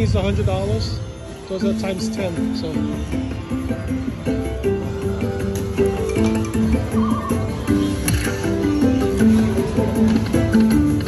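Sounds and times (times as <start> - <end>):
slot machine electronic melody: 0.0 - 11.0.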